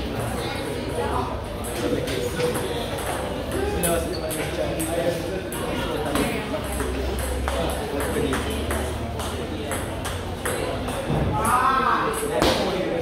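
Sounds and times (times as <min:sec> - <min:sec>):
ping pong ball clicking: 0:06.7 - 0:10.9.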